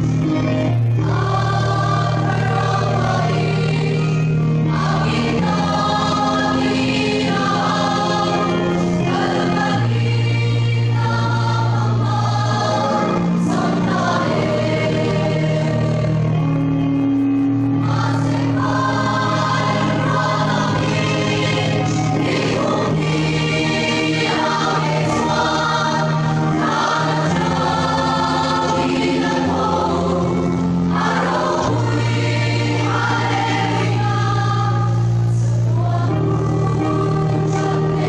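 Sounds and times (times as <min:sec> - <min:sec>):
church choir singing a hymn: 0:00.0 - 0:38.0.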